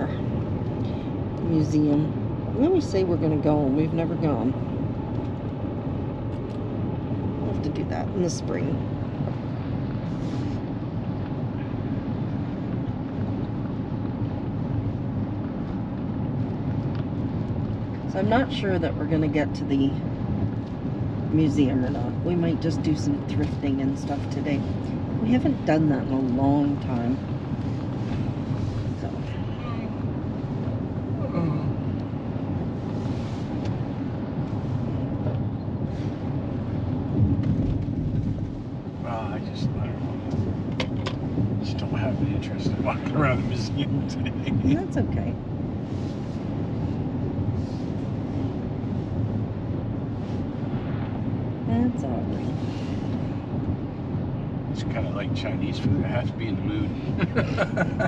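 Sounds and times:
road noise inside car cabin: 0.0s - 58.0s.

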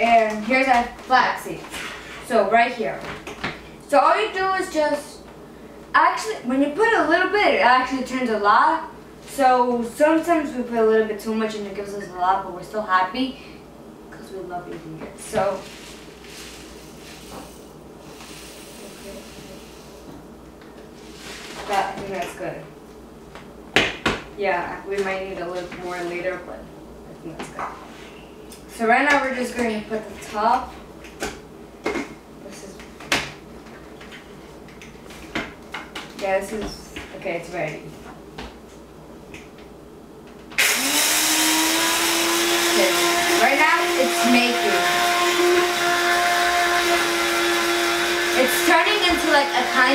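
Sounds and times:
coffee grinder motor grinding: 40.6s - 49.9s.

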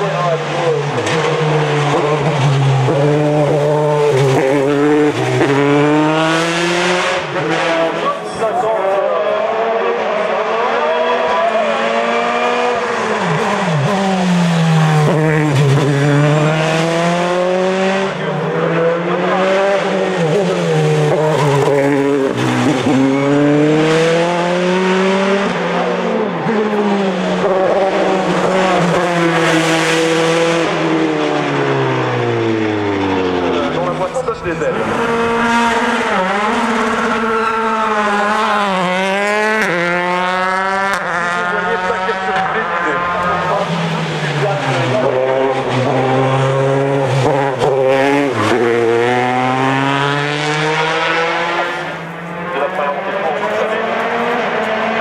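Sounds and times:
race car engine shifting gears: 0.0s - 55.0s.

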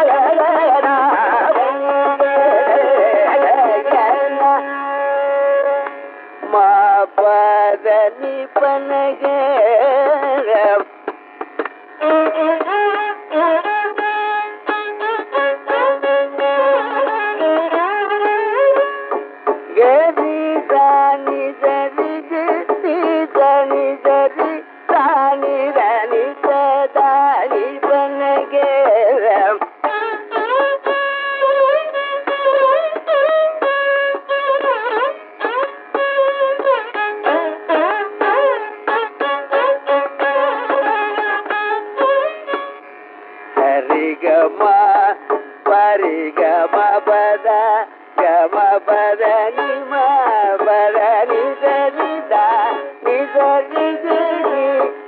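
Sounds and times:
man singing ornamented phrases: 43.6s - 55.0s.

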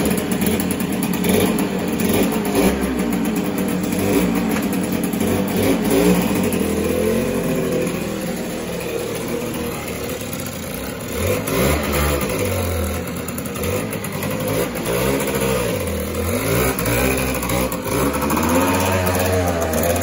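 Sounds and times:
two-stroke motorcycle engine revving: 0.0s - 20.0s.

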